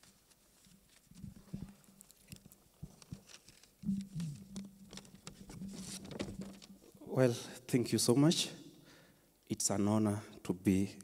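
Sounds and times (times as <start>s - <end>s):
paper rustling: 0.0s - 6.8s
low hum: 3.9s - 6.4s.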